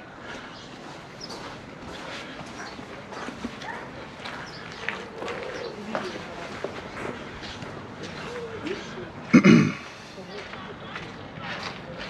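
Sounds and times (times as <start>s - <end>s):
open-air ambience: 0.0s - 12.0s
footsteps on stone paving: 0.2s - 12.0s.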